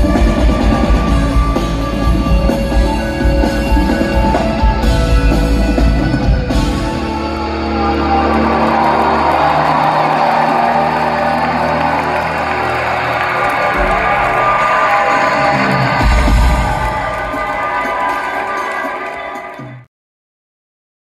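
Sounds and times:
sustained guitar and keyboard chords: 0.0s - 17.2s
crowd cheering and whooping: 0.0s - 19.8s.

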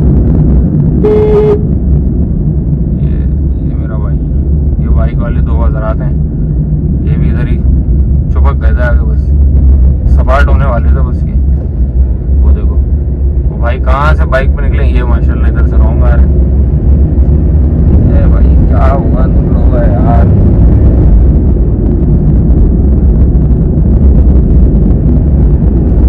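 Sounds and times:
vehicle rumble in traffic: 0.0s - 26.0s.

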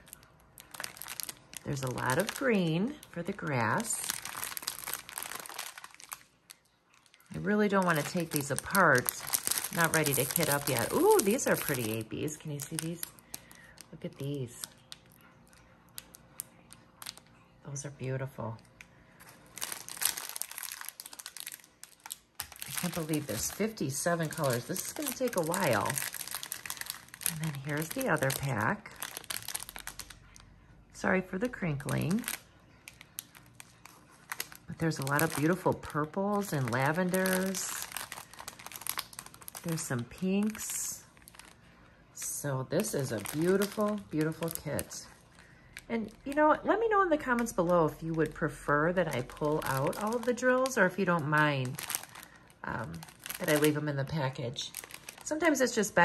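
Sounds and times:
plastic packaging crinkling: 0.0s - 56.0s.

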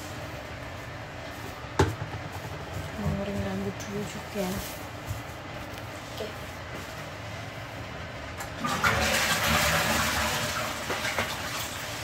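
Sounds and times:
toilet flushing: 8.3s - 12.0s.

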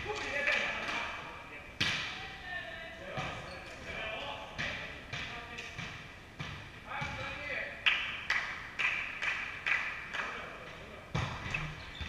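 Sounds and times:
ball bouncing on wooden floor: 11.1s - 12.0s.

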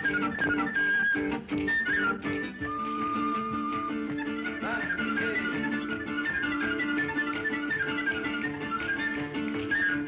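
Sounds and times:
harmonica melody: 0.0s - 10.0s
strummed guitar chords: 0.0s - 10.0s.

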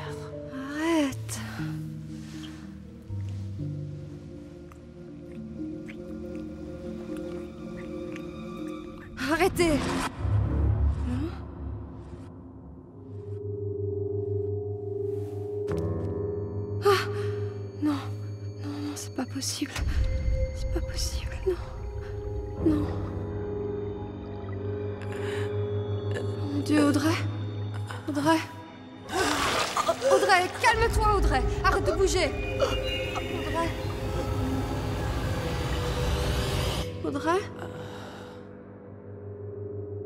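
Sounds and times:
low sustained music drone: 30.8s - 40.0s.

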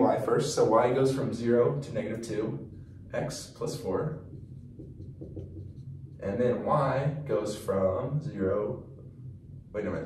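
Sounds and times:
low hum: 0.0s - 10.0s
marker scratching on whiteboard: 4.2s - 6.2s.

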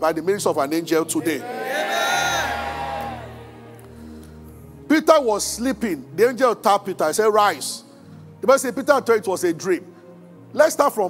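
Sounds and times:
soft keyboard music: 0.0s - 11.0s
person shouting: 1.2s - 3.3s.

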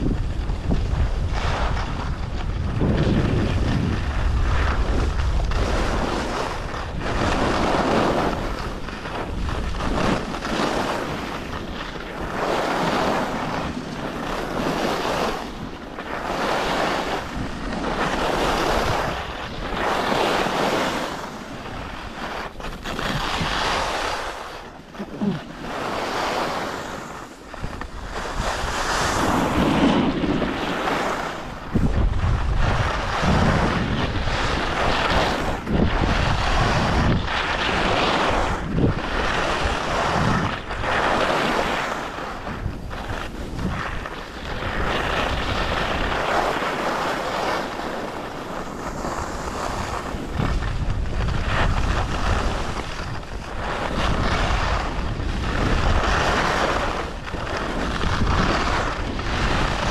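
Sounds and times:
skis scraping on snow: 0.0s - 59.9s
wind buffeting microphone: 0.0s - 59.9s.

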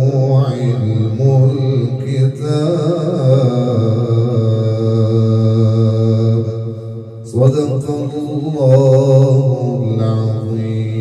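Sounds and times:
man reciting melodically into microphone: 0.0s - 11.0s.

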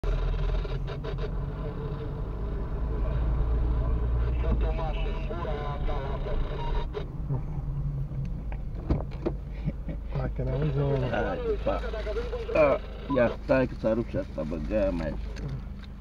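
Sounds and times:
car engine and road rumble: 0.0s - 16.0s.

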